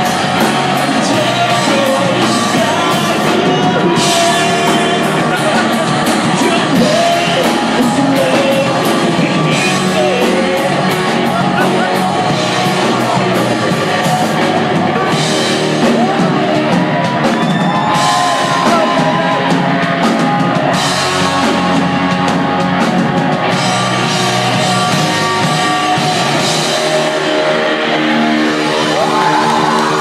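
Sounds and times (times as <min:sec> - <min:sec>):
live rock band playing: 0:00.0 - 0:30.0.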